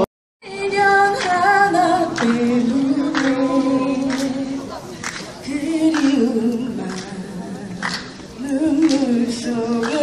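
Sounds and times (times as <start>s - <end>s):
person singing with vibrato: 0.0s - 10.0s.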